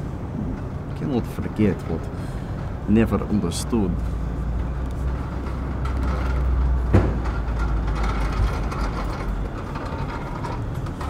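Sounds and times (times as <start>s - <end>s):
heavy vehicle engine: 0.0s - 11.0s
road traffic rumble: 0.0s - 11.0s.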